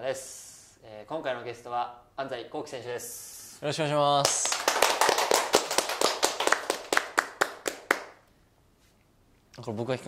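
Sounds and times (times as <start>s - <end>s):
people clapping: 4.2s - 8.3s.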